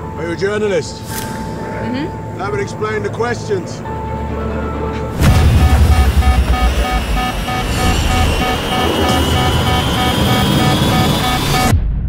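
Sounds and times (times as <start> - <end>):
plane engine roar and rushing air: 0.9 - 11.7
cockpit warning alarm beeping: 5.2 - 11.7
whine rising in pitch: 5.2 - 11.7.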